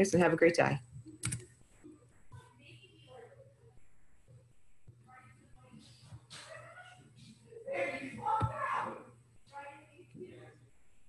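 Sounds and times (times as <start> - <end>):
computer keys clicking: 1.0 - 1.6.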